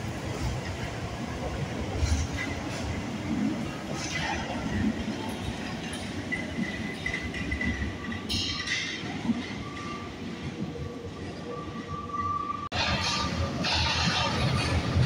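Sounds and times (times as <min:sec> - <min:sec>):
train rolling rumble: 0:00.0 - 0:15.0.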